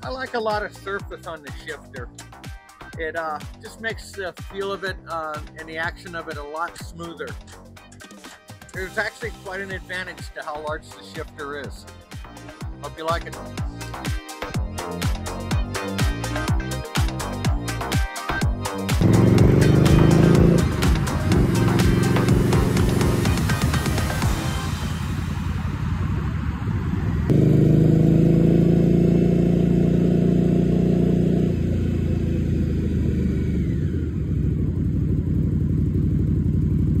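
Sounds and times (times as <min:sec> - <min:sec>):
motorcycle engine accelerating: 0:19.0 - 0:37.0.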